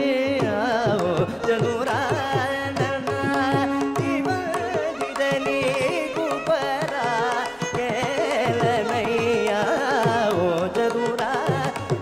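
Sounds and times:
man singing classical song: 0.0 - 12.0
violin: 0.0 - 12.0.

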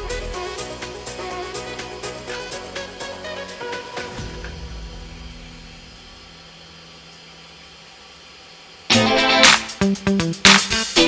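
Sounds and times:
background music: 0.0 - 6.4, 8.9 - 11.0.

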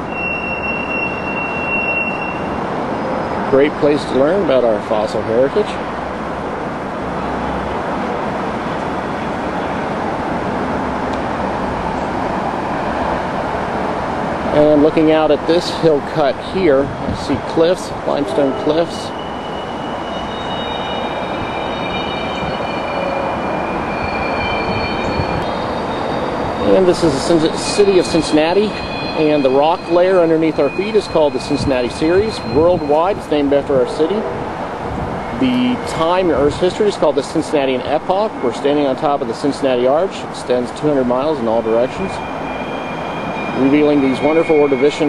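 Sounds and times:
high steady squealing tone: 0.0 - 5.7, 11.5 - 45.0
train passing: 0.0 - 45.0.

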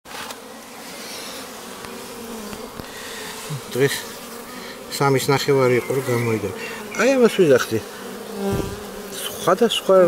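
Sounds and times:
bees buzzing: 0.1 - 10.0.

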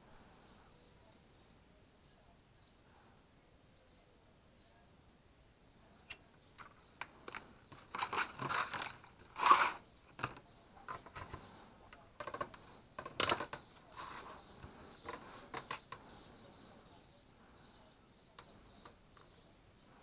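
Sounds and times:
plastic and test leads rustling: 6.6 - 11.6, 12.2 - 16.2.

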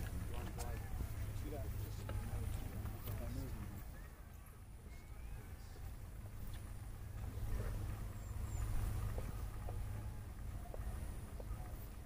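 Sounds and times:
steady low rumble: 4.5 - 12.0.

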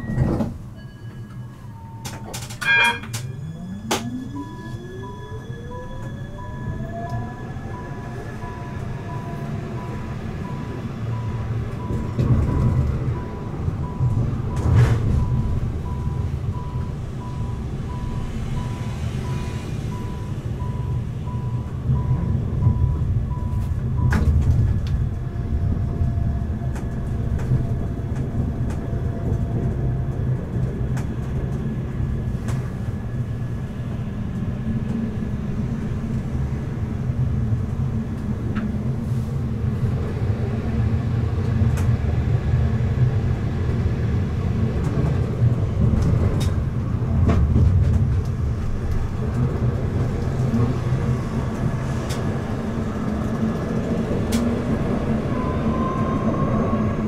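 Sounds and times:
wheels rumbling on rail: 0.0 - 57.0
electric tram drive whine: 1.6 - 57.0.

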